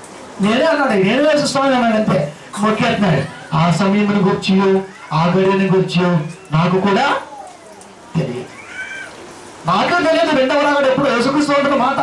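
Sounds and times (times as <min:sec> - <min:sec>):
man speaking into a microphone: 0:00.4 - 0:07.3, 0:08.1 - 0:08.5, 0:09.6 - 0:12.0.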